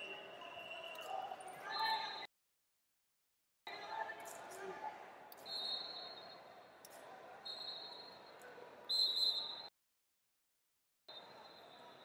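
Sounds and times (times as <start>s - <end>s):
high steady whistle-like tone: 0.0s - 2.3s, 5.4s - 6.5s, 7.5s - 8.3s, 8.9s - 9.7s, 11.1s - 12.0s.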